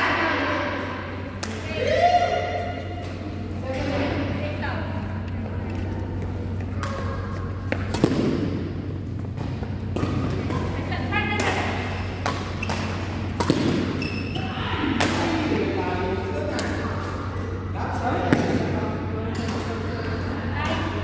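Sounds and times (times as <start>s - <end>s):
steady low hum: 0.0s - 21.0s
voices in a hall: 0.0s - 21.0s
racket striking shuttlecock: 6.7s - 8.7s, 11.4s - 14.1s
shoes squeaking on court: 12.2s - 14.6s.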